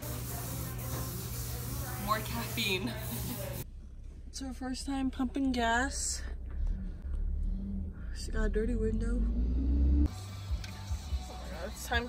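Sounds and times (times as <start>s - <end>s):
low hum: 3.6s - 10.1s.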